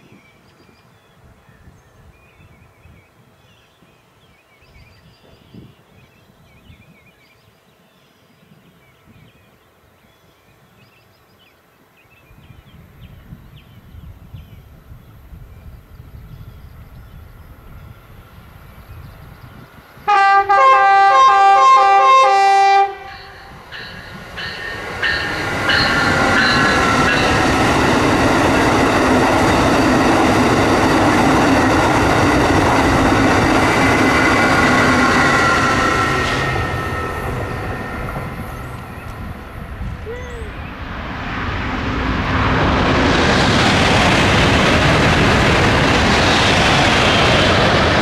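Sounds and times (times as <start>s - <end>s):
train passing at speed: 12.0s - 48.0s
train horn chord: 20.1s - 24.0s.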